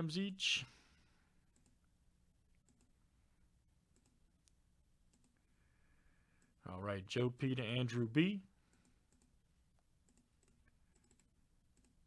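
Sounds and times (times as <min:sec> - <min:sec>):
man speaking: 0:00.0 - 0:00.8, 0:06.6 - 0:08.6
computer mouse clicks: 0:01.5 - 0:01.9, 0:02.5 - 0:03.0, 0:03.9 - 0:05.5, 0:08.6 - 0:09.4, 0:10.0 - 0:12.0.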